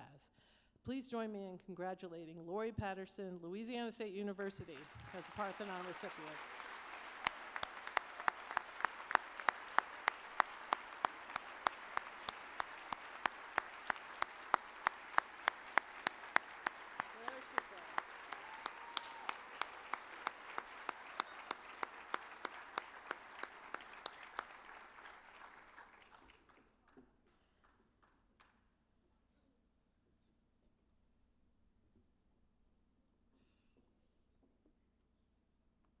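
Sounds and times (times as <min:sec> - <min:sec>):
audience applauding: 0:04.6 - 0:26.6
nearby hands clapping evenly: 0:04.8 - 0:26.6.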